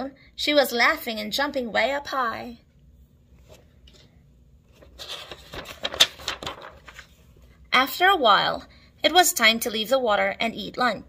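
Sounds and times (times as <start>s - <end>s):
book page turning: 3.4s - 4.1s, 4.7s - 7.4s.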